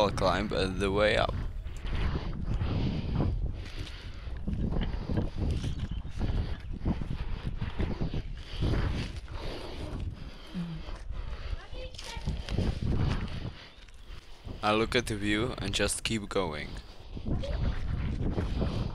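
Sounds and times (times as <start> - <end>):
rustling and scraping on bark: 1.0 - 18.9.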